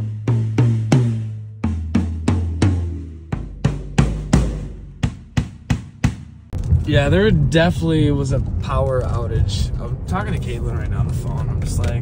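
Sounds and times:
drums struck one at a time: 0.2 - 6.5.

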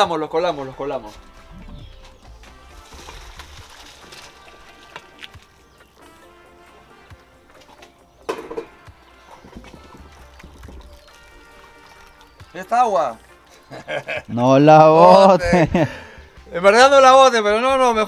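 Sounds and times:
low background music: 0.0 - 18.0
water splashing into a colander: 2.2 - 6.2, 7.0 - 14.4.

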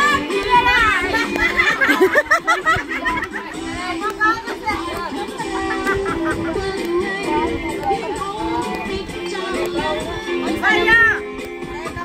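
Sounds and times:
children calling and chattering: 0.0 - 12.0
music playing: 0.0 - 12.0.

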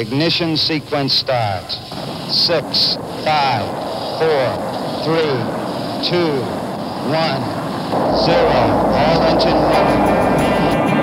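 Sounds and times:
man counting down: 0.0 - 10.3
steady background noise: 0.0 - 11.0.

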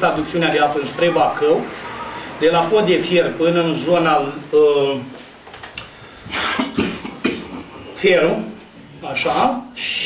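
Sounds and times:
person coughing: 6.3 - 7.8.

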